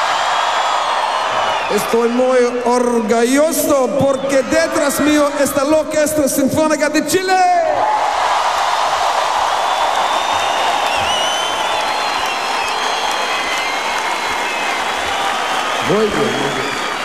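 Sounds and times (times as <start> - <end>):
concert audience applauding: 0.0 - 6.3, 7.8 - 17.0
whistles from crowd: 0.2 - 2.3, 3.8 - 5.3, 9.5 - 17.0.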